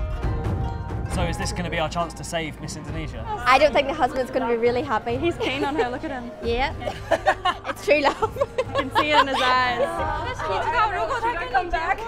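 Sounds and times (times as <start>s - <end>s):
people chatting: 1.1s - 6.8s, 7.7s - 12.0s
people laughing: 3.2s - 12.0s.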